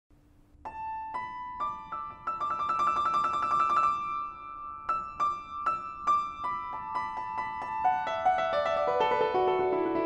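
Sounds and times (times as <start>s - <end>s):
upright piano playing: 0.6s - 10.0s.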